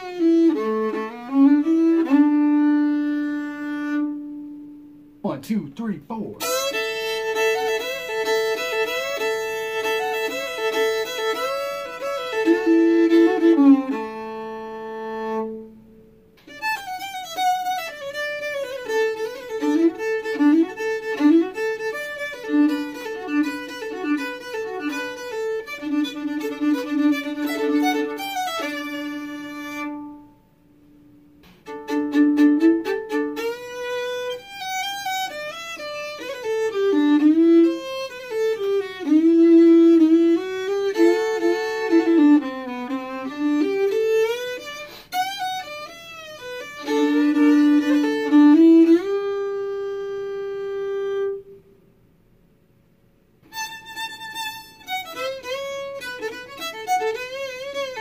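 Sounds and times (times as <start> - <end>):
fiddle playing country solo: 0.0 - 4.5, 6.4 - 15.8, 16.4 - 30.4, 31.6 - 51.5, 53.4 - 58.0.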